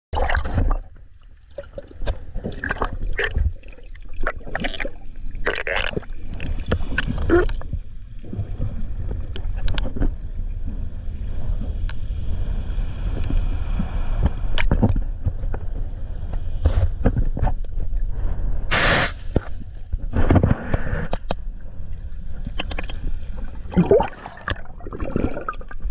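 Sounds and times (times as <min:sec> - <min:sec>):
water bubbling and churning: 0:00.1 - 0:15.0, 0:21.6 - 0:25.9
underwater rushing noise: 0:00.2 - 0:25.9.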